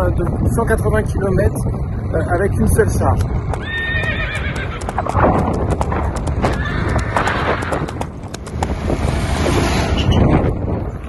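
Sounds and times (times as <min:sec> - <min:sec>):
hooves clip-clopping: 0:02.4 - 0:09.2
rushing noise: 0:04.9 - 0:11.0.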